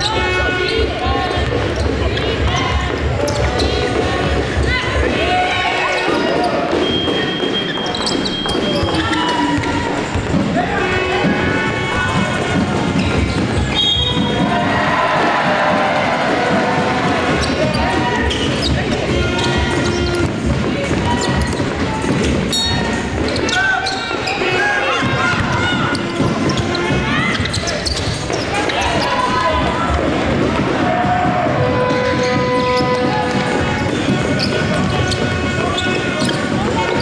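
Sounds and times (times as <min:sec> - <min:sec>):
basketball bouncing on court: 0:00.0 - 0:37.0
players and spectators voices: 0:00.0 - 0:37.0.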